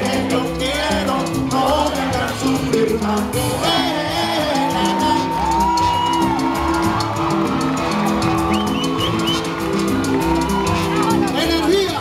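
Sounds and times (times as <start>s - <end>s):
salsa band playing: 0.0s - 12.0s.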